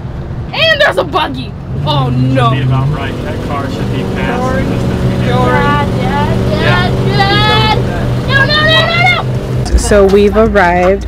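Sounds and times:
engine and road noise drone: 0.0s - 11.0s.

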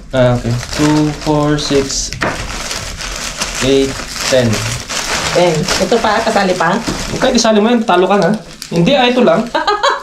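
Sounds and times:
foil wrappers crinkling: 0.2s - 10.0s.

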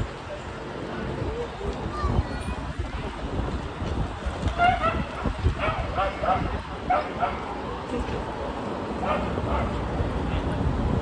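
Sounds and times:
street and traffic rumble: 0.0s - 11.0s.

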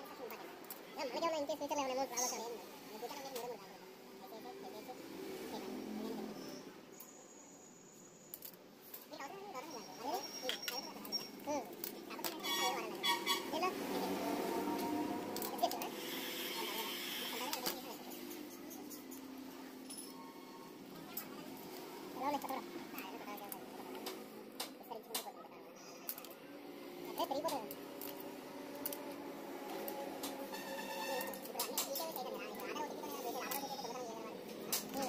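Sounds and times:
indistinct voices talking: 9.1s - 35.0s.

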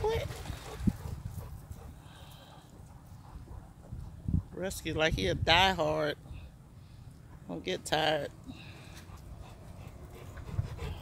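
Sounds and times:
dog panting: 0.3s - 4.5s, 9.0s - 11.0s.

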